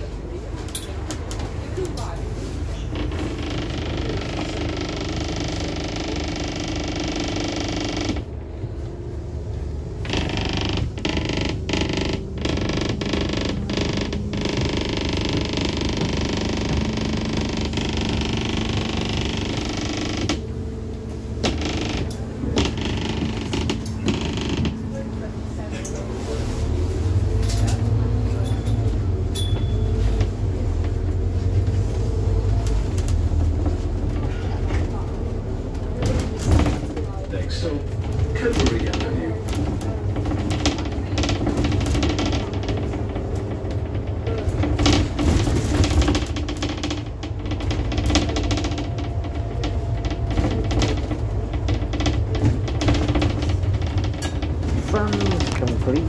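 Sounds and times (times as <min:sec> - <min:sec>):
bus body creaking and rattling: 0:00.0 - 0:56.0
bus engine drone: 0:00.0 - 0:56.0.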